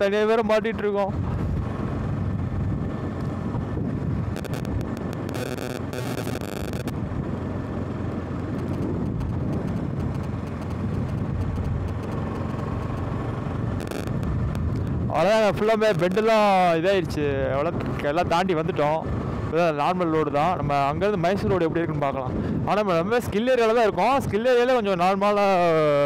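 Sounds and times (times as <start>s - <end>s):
wind rushing over microphone: 0.6s - 24.9s
motorcycle engine running: 1.2s - 16.3s.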